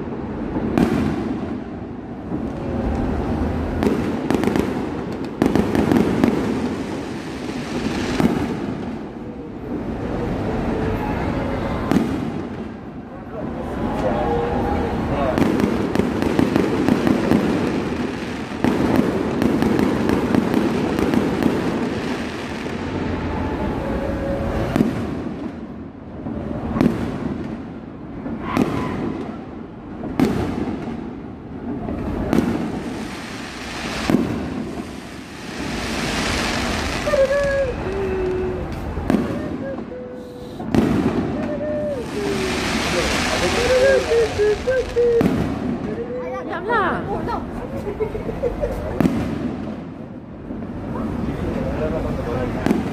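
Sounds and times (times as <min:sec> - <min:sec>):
fireworks bangs: 0:00.0 - 0:47.7, 0:48.4 - 0:52.9
fireworks crackling: 0:00.0 - 0:52.9.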